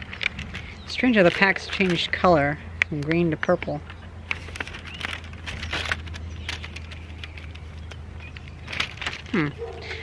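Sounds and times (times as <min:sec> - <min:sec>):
low steady hum: 0:00.0 - 0:10.0
paper and film crinkling: 0:00.0 - 0:10.0.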